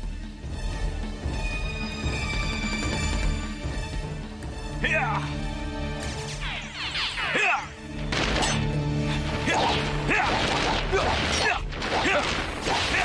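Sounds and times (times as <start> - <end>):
dramatic theme music: 0.0 - 13.0.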